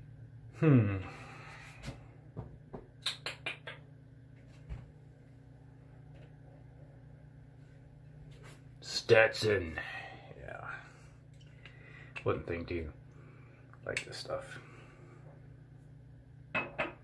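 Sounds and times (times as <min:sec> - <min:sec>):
steady low hum: 0:00.0 - 0:17.0
glass bottle clicks and knocks: 0:16.6 - 0:17.0.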